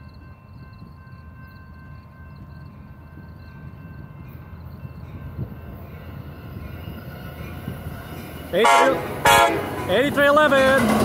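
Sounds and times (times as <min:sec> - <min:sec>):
passenger train approaching: 0:00.0 - 0:11.0.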